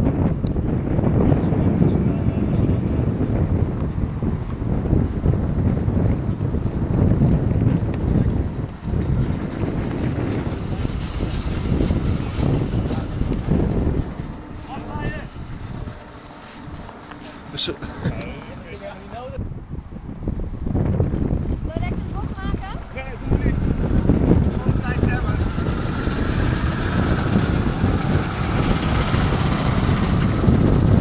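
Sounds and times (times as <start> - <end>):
wind buffeting microphone: 0.0 - 31.0.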